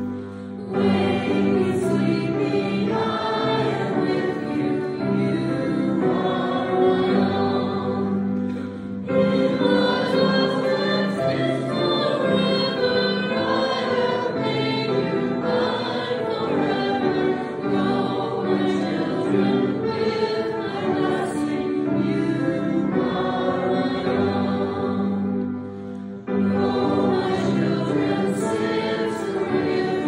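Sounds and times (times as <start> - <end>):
congregation singing a hymn: 0.0 - 30.0.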